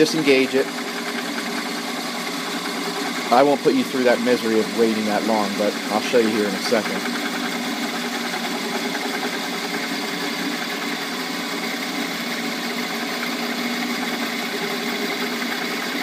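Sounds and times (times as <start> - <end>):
lathe turning wood: 0.0 - 16.0.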